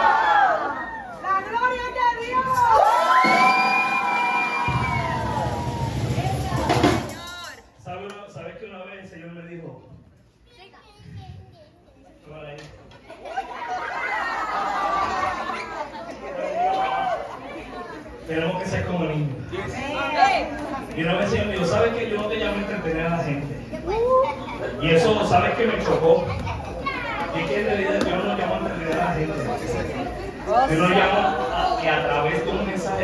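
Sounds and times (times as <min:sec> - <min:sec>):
children shouting and cheering: 0:00.0 - 0:07.6, 0:13.3 - 0:17.9.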